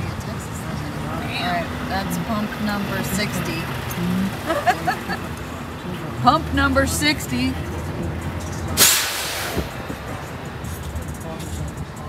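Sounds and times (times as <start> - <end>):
vehicle hum from inside cab: 0.0 - 12.0
sudden loud hiss: 8.8 - 9.8.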